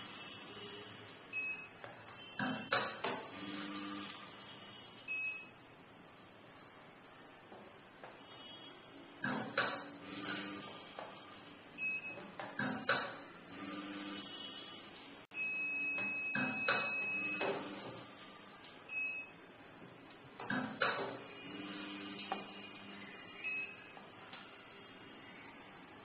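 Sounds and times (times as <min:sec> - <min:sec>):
short electronic beeps: 0:00.2 - 0:02.7, 0:04.7 - 0:05.6, 0:11.8 - 0:12.2, 0:15.3 - 0:17.5, 0:18.9 - 0:19.4, 0:21.3 - 0:24.0
machine feeder humming: 0:03.2 - 0:05.1, 0:09.2 - 0:11.9, 0:12.6 - 0:15.6, 0:20.5 - 0:25.6.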